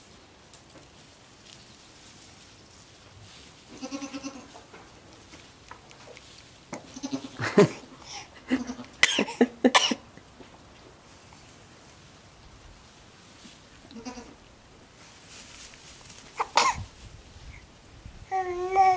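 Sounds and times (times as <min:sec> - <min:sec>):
goat kid bleating: 0:03.7 - 0:04.6, 0:06.7 - 0:09.5, 0:13.9 - 0:14.5.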